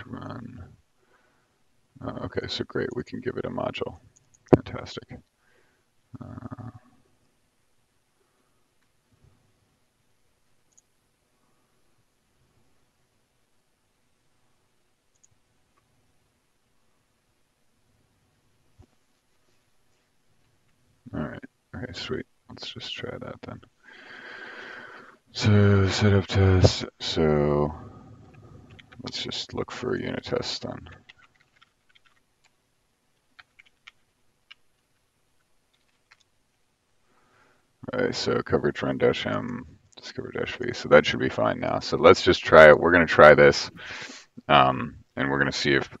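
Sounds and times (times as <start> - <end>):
faint quick clicks: 15.1 - 15.9
computer keyboard keystrokes: 31.1 - 32.6, 33.4 - 34.6, 35.7 - 36.3.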